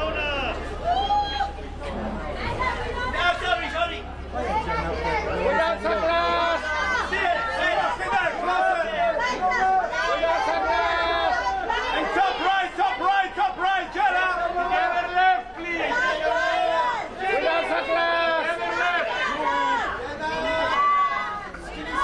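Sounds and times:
people talking and calling out: 0.0s - 22.0s.

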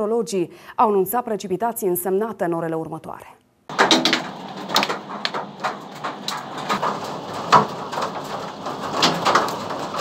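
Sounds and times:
hail and heavy rain falling: 3.7s - 10.0s.

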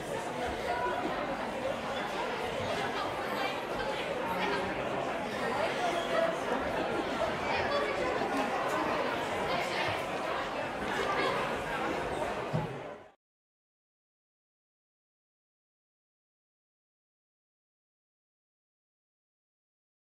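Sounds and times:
crowd chatter: 0.0s - 13.2s.

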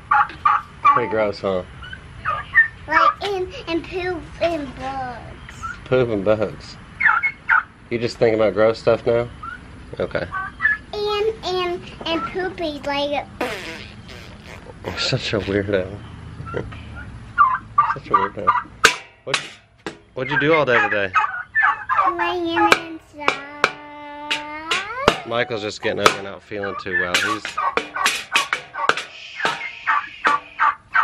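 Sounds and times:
poultry calling: 0.0s - 3.2s, 7.0s - 7.9s, 9.2s - 10.9s, 13.4s - 31.0s
turkey gobbling: 0.0s - 3.6s, 7.0s - 7.8s, 9.2s - 11.0s, 13.4s - 19.1s, 20.2s - 31.0s.

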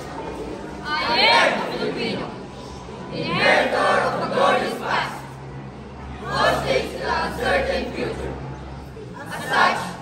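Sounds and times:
group reciting in unison: 0.8s - 2.4s, 3.0s - 5.4s, 6.2s - 10.0s.

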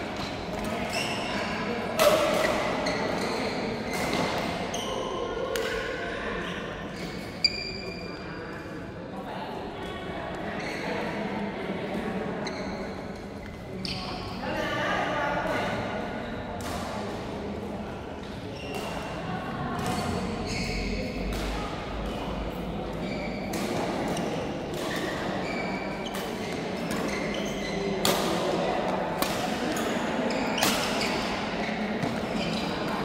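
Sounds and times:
rackets hitting shuttlecock: 1.9s - 3.3s, 26.1s - 28.6s, 29.2s - 30.0s, 30.6s - 31.4s.

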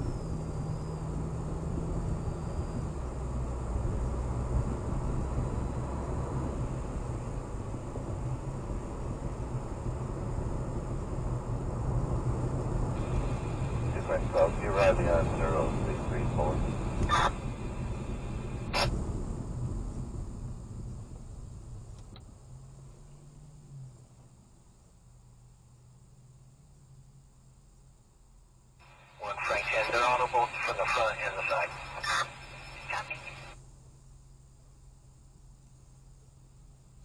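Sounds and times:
car road and tyre noise: 0.0s - 37.0s
garbled radio dispatch voice: 13.9s - 17.4s, 29.0s - 33.6s.

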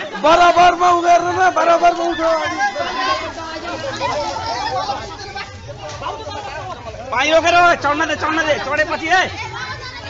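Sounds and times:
young men chattering: 0.0s - 10.0s.

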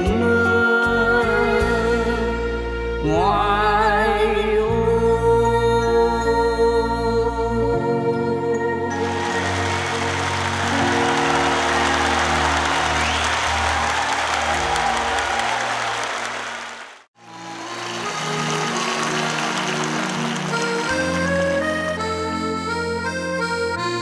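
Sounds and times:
soft instrumental music: 0.0s - 15.5s, 17.2s - 24.0s
audience applause: 8.9s - 22.0s.

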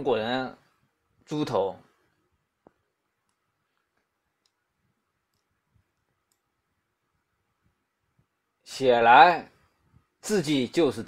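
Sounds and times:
very faint clicks: 2.6s - 6.6s.

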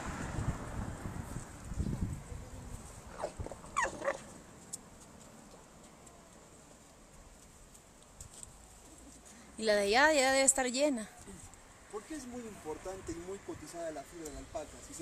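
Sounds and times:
wind rumble on microphone: 0.0s - 3.8s.

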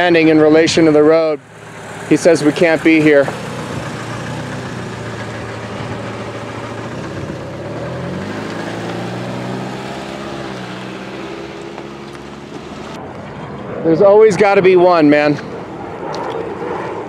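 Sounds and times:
car driving past accelerating: 1.4s - 13.9s.

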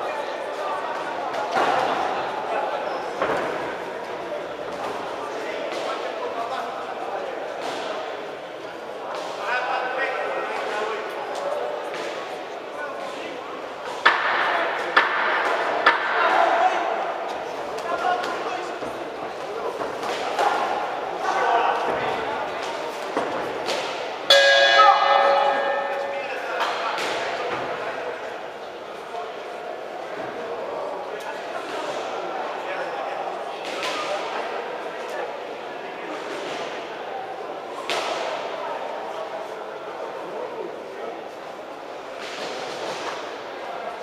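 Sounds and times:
indistinct voices and crowd murmur: 0.0s - 44.0s
boxing ring bell ringing: 24.3s - 26.2s.

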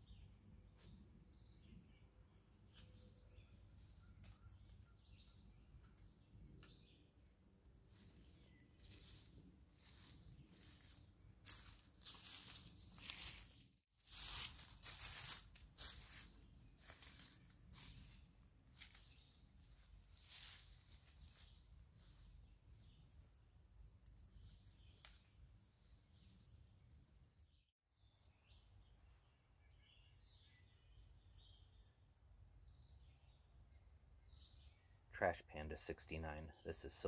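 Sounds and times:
faint birdsong: 0.0s - 37.0s
footsteps crunching dry leaves: 7.9s - 22.9s.

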